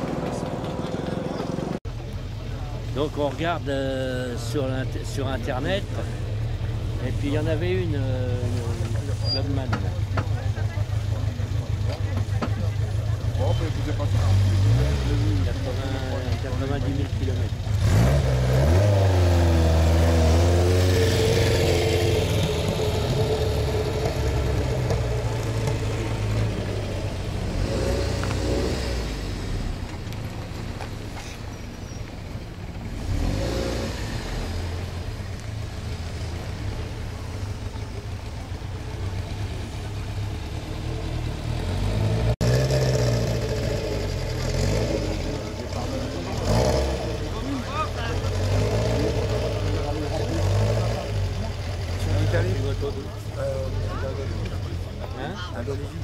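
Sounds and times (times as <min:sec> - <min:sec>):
car engine running: 0:00.0 - 0:56.0
voices of onlookers: 0:00.0 - 0:56.0.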